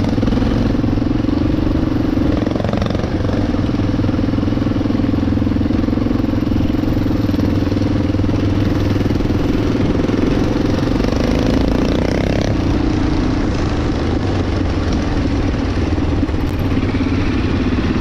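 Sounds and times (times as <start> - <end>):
motorcycle engine running: 0.0 - 18.0.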